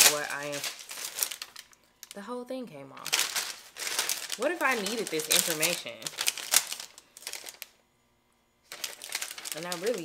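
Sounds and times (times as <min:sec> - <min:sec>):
plastic pouch crinkling: 0:00.0 - 0:02.2, 0:03.0 - 0:07.8, 0:08.7 - 0:10.0.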